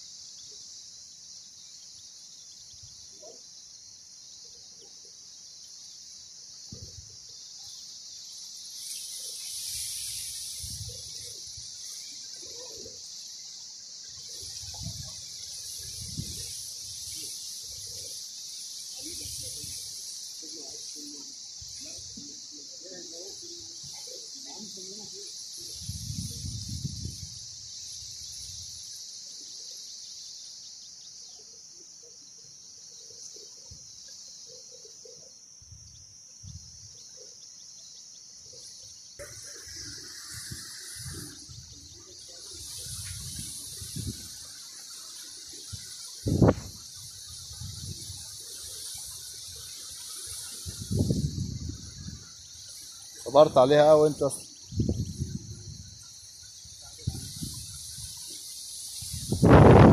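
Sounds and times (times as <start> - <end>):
high-pitched insect chorus: 0.0 - 59.9.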